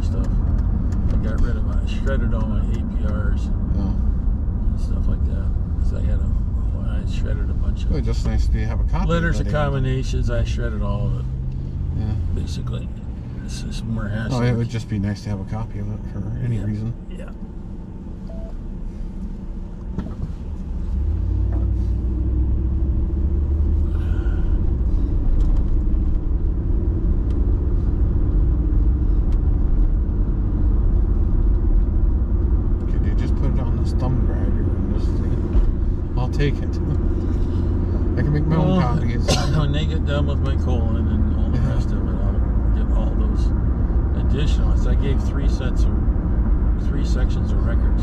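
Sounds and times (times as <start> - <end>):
car engine and tyres rumbling: 0.0 - 48.0
person speaking: 6.0 - 11.3, 12.0 - 17.3, 38.2 - 43.3.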